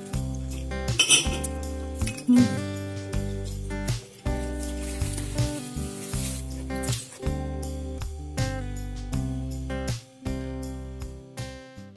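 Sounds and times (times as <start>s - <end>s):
background music with bass: 0.0s - 11.9s.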